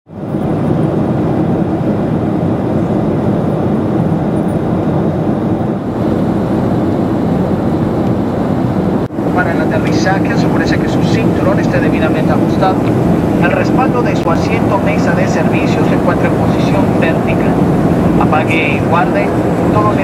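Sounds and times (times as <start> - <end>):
jet airliner cabin noise: 0.1 - 20.0
cabin announcement: 9.1 - 20.0.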